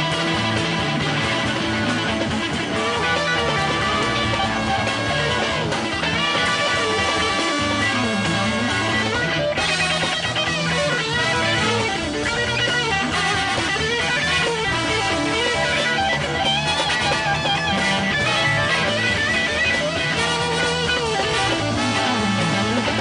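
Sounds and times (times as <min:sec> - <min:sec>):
bass guitar: 0:00.0 - 0:23.0
drums: 0:00.0 - 0:23.0
electric guitar solo: 0:00.0 - 0:23.0.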